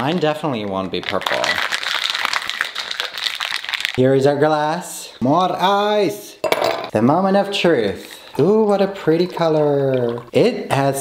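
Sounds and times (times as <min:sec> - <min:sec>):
ice rattling in cocktail shaker: 0:00.0 - 0:04.0.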